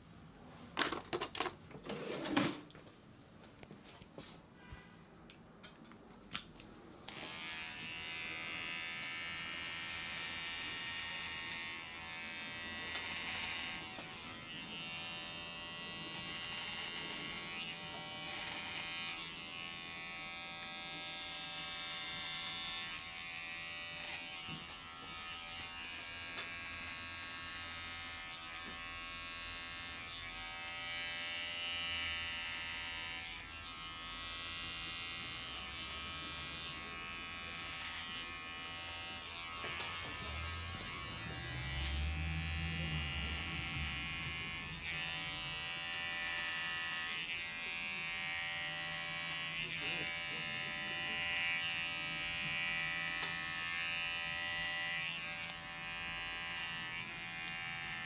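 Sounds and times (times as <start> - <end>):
electric hair clipper buzzing: 7.1 - 58.0.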